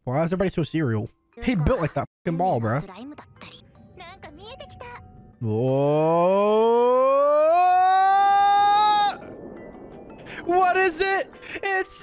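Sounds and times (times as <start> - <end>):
man shouting whoa: 5.5 - 9.2.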